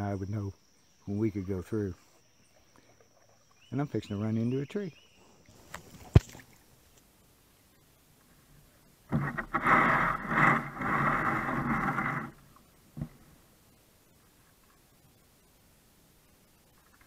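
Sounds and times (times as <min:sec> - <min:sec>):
kayak knocking against tree: 0:05.7 - 0:06.5, 0:09.1 - 0:12.3, 0:12.9 - 0:13.3.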